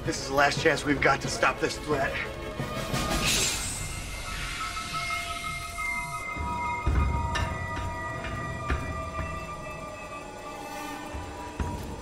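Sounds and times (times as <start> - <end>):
suspenseful film score: 0.0 - 12.0
gas venting hiss: 3.0 - 6.4.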